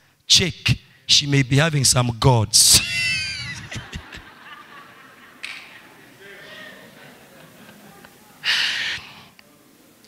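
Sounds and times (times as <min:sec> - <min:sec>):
high-pitched laughing: 0:02.8 - 0:05.0.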